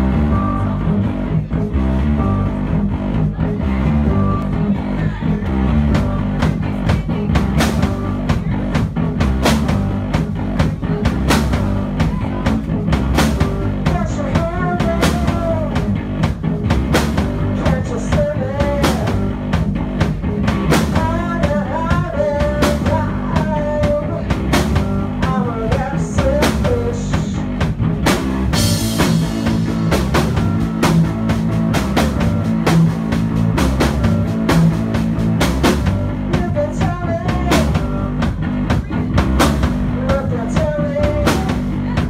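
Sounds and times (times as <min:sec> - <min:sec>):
drum kit beat: 0:00.0 - 0:42.0
electric bass: 0:00.0 - 0:42.0
keyboard notes: 0:00.0 - 0:42.0
woman singing: 0:17.5 - 0:19.2, 0:21.0 - 0:24.4, 0:36.3 - 0:39.2, 0:39.9 - 0:42.0.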